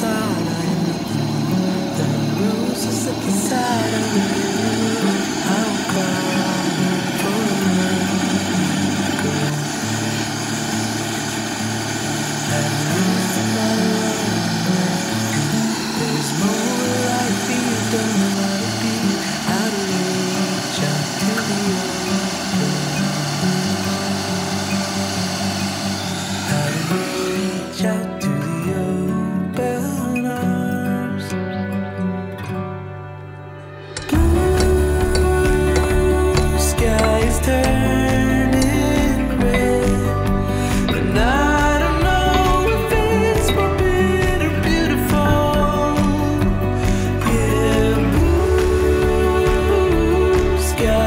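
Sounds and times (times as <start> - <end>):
gas torch flame hissing: 0.0 - 28.1, 33.9 - 51.0
background music: 0.0 - 51.0.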